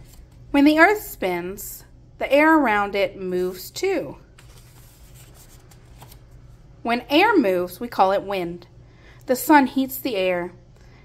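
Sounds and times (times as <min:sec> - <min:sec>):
book page turning: 0:00.0 - 0:00.4, 0:04.4 - 0:06.6.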